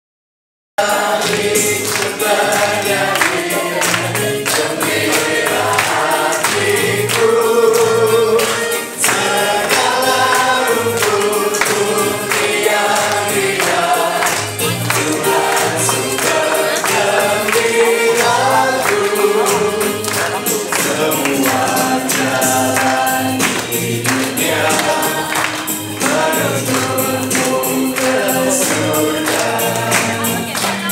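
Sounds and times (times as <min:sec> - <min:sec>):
choir singing a hymn: 0:00.8 - 0:30.9
instrumental accompaniment: 0:00.8 - 0:30.9
steady percussion beat: 0:00.8 - 0:30.9.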